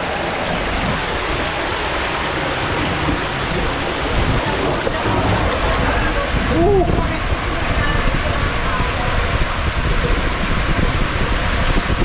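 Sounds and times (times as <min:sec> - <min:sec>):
water rushing through tube slide: 0:00.0 - 0:12.0.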